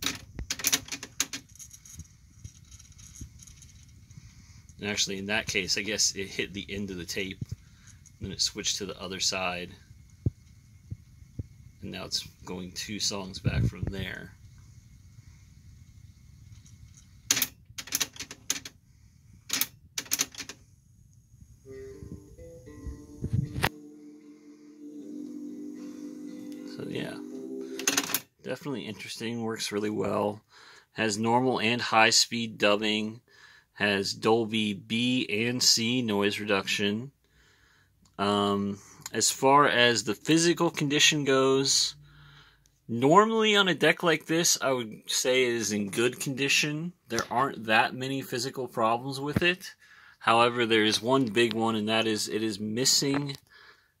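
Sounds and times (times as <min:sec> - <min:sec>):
music from tape: 0:21.7 - 0:28.2
cassette deck tape whirring: 0:22.8 - 0:24.0.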